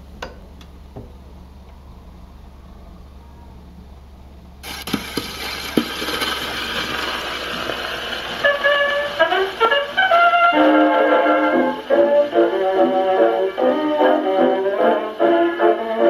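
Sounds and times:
record surface hiss: 0:00.0 - 0:16.0
record crackles: 0:04.6 - 0:10.4
dance band playing: 0:07.9 - 0:16.0.

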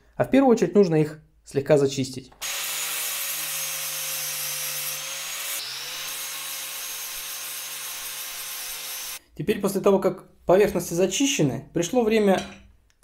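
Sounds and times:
angle grinder grinding metal: 0:02.4 - 0:09.2.

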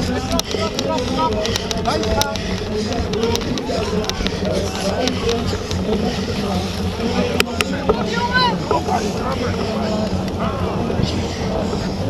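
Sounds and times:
voices calling out: 0:00.0 - 0:12.0
wind rumbling on microphone: 0:00.0 - 0:12.0.

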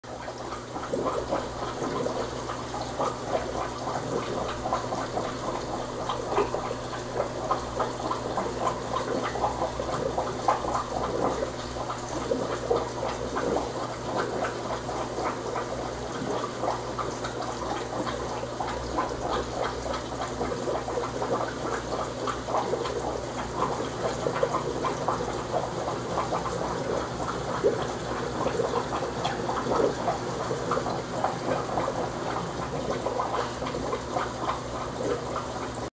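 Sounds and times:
aquarium water bubbling: 0:00.0 - 0:35.9.

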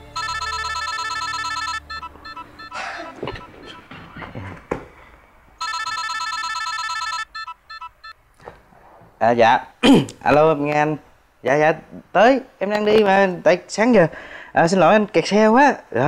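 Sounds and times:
phone ringtone: 0:00.0 - 0:03.8, 0:05.6 - 0:08.2.

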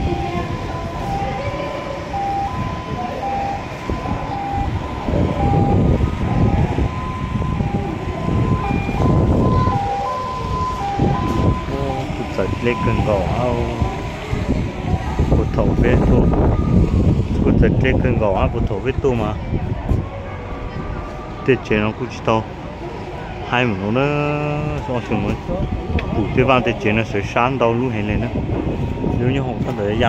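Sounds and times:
voices: 0:00.0 - 0:30.0
wind buffeting microphone: 0:00.0 - 0:30.0.

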